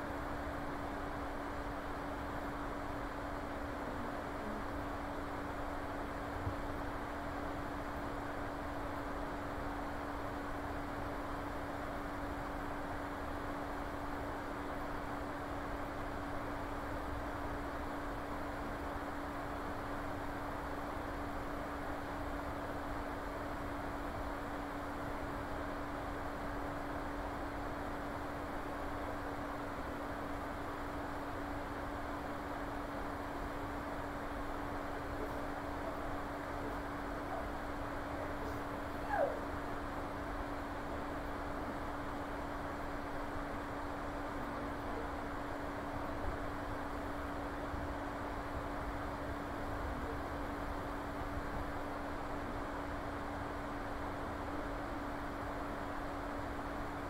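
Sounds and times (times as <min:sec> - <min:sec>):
constant low hum: 0:00.0 - 0:57.0
steady background hiss: 0:00.0 - 0:57.0.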